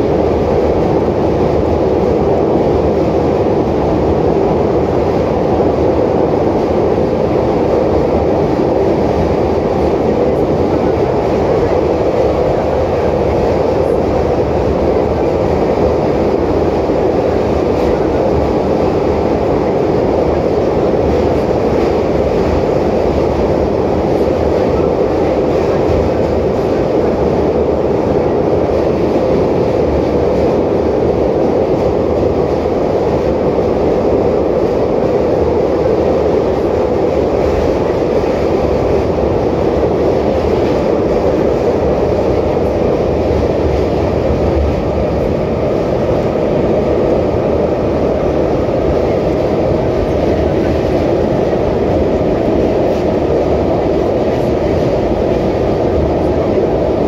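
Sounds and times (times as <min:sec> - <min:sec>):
train running through tunnel: 0:00.0 - 0:57.0.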